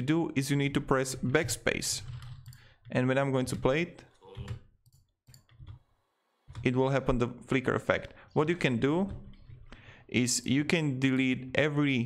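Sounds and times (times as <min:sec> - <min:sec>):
computer mouse clicks: 0:02.2 - 0:02.7, 0:04.4 - 0:05.8.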